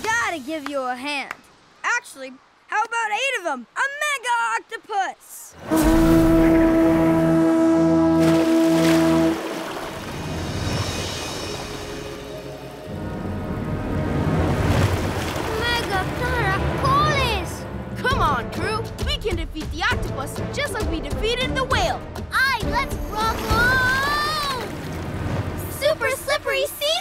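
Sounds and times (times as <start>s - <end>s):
cartoon music and effects: 16.1s - 24.7s.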